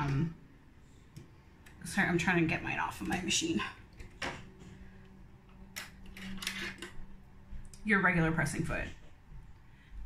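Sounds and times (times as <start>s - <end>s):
small metallic clicks and rattles: 5.6s - 7.0s.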